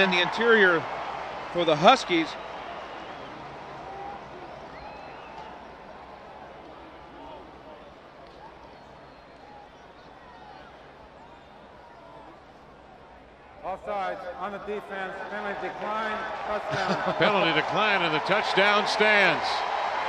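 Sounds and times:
stadium crowd voices: 0.0 - 20.0.

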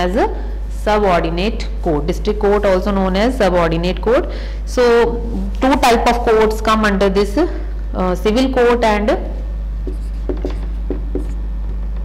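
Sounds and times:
steady low hum: 0.0 - 12.0
marker writing on whiteboard: 9.8 - 11.4.

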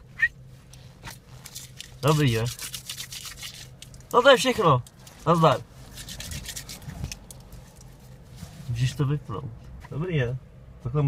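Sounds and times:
rustling in a car seat: 0.4 - 2.5, 4.2 - 10.0.

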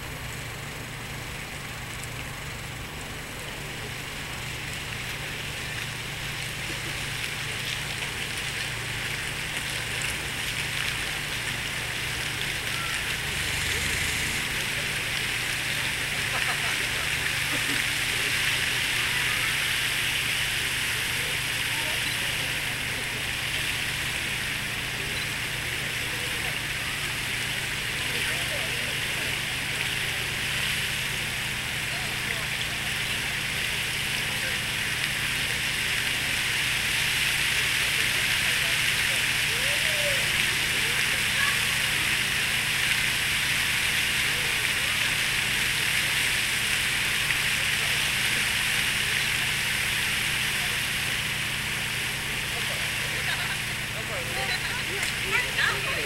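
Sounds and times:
fountain water splashing: 0.0 - 56.0
faint murmur of voices: 3.1 - 56.0.

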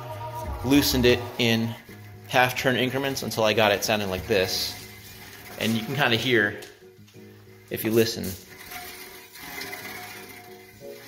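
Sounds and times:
music: 0.0 - 11.0
brake pads rubbing on rotor: 1.9 - 6.6, 7.2 - 11.0.

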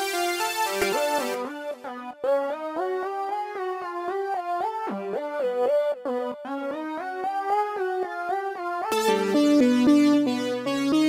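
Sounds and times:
synthesizer melody: 0.0 - 11.0.

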